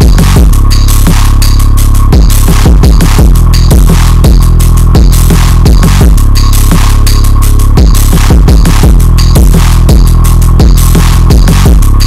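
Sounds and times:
electronic music: 0.0s - 12.0s
booming kick drum hits: 5.0s - 6.2s, 7.8s - 11.8s.

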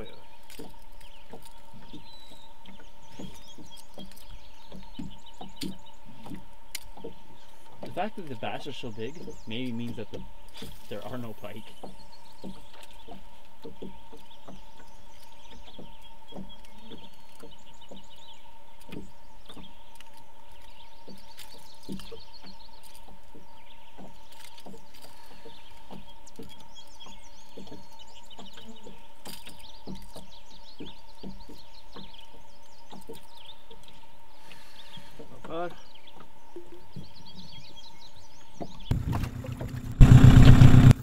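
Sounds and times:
small birds chirping: 0.0s - 39.0s
high-pitched hum: 38.9s - 41.0s.

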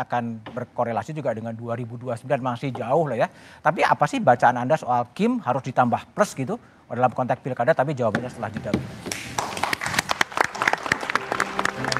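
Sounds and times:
audience applauding: 9.1s - 11.9s.

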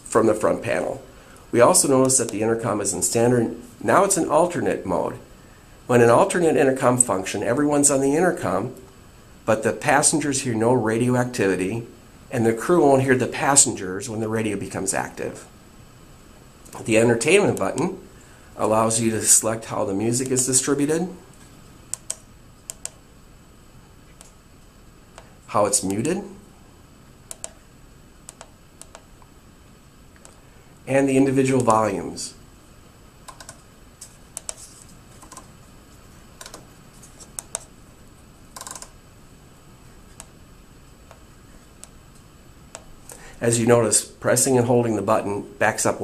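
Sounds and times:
faint high-pitched whine: 0.0s - 46.0s.

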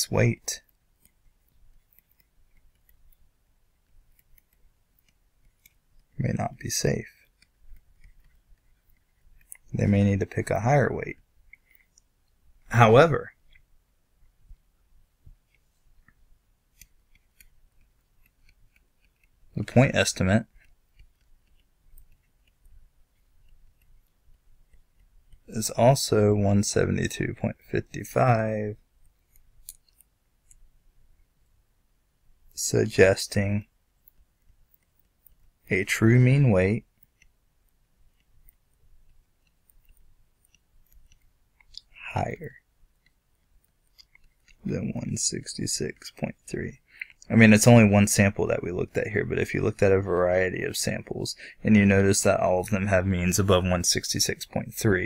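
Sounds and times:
stylus writing on a tablet: 0.1s - 50.4s.

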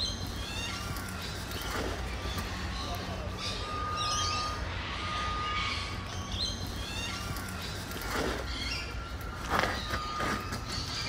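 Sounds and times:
birds chirping and calling: 0.0s - 11.0s
faint steady high tone: 2.8s - 7.8s.

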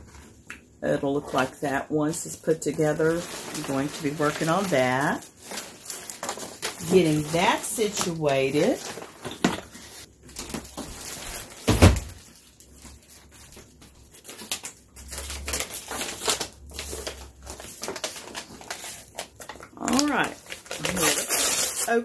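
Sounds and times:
plastic wrapping crinkling: 0.0s - 22.0s.

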